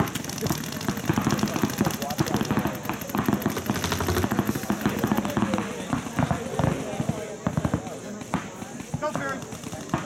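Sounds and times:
paintball markers firing: 0:00.0 - 0:10.0.

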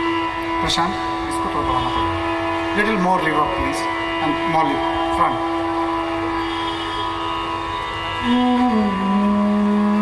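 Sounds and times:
tanpura drone: 0:00.0 - 0:10.0.

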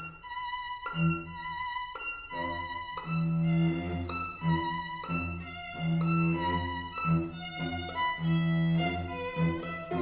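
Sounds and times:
bowed strings holding notes: 0:00.0 - 0:10.0.

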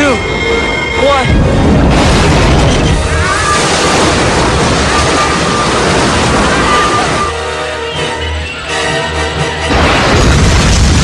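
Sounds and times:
explosion roar: 0:01.3 - 0:07.4, 0:09.7 - 0:11.0.

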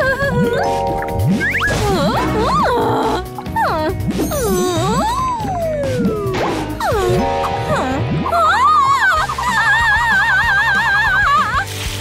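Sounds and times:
warbling cartoon scream: 0:08.3 - 0:11.6.

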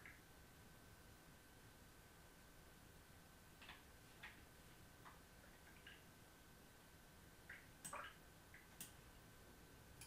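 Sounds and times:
faint high hum: 0:00.0 - 0:10.0
computer mouse clicks: 0:08.6 - 0:09.0.

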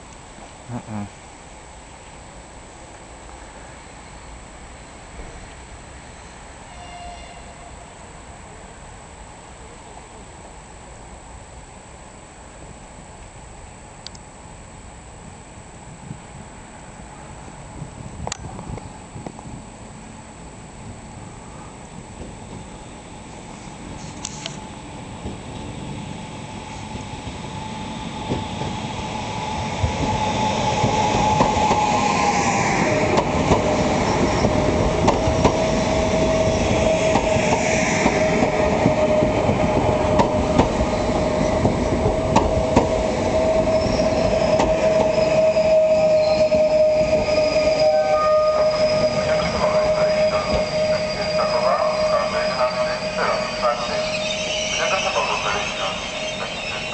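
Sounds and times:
electric train whine: 0:01.3 - 0:56.9.

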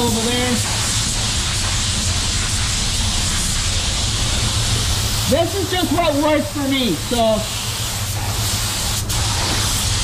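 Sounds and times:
paint spray gun hissing: 0:00.0 - 0:10.0.

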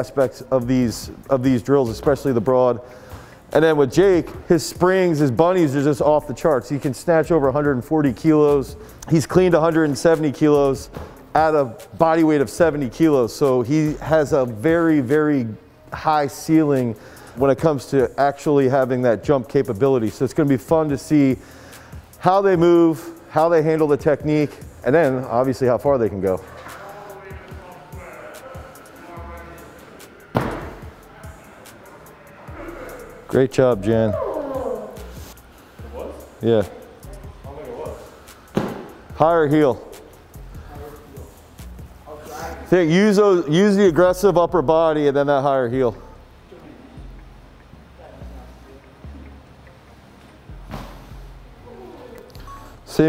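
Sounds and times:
background music: 0:00.0 - 0:53.0
loud thud of jump landing: 0:30.4 - 0:30.8, 0:50.7 - 0:51.1.

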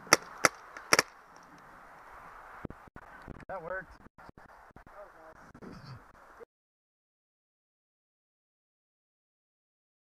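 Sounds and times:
outdoor background hiss: 0:00.0 - 0:06.5
paintball marker shot: 0:00.1 - 0:01.1.

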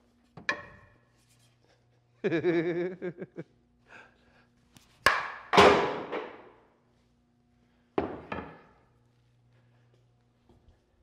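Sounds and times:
bat cracking against wood: 0:05.0 - 0:06.5.

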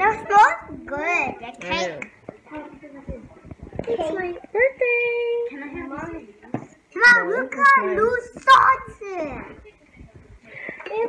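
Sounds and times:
quiet talking: 0:00.0 - 0:11.0.

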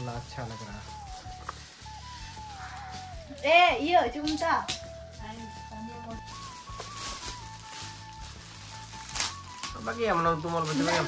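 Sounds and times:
background music with bass: 0:00.0 - 0:11.0
foil gift wrap tearing: 0:00.4 - 0:03.6, 0:04.2 - 0:11.0.

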